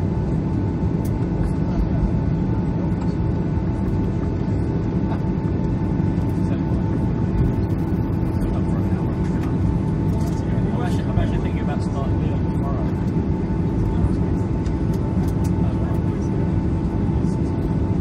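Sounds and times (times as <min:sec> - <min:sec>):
jet engines rumbling: 0:00.0 - 0:18.0
steady whine: 0:00.0 - 0:18.0.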